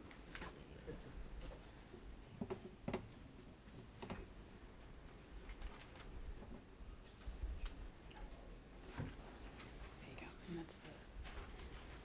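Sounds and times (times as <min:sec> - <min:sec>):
low murmured voice: 0:00.4 - 0:01.6.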